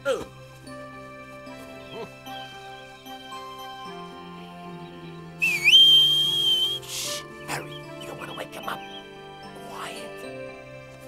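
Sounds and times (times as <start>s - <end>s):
soft background music: 0.0s - 11.0s
cartoon whistle: 5.4s - 7.2s
short hiss: 6.8s - 7.3s.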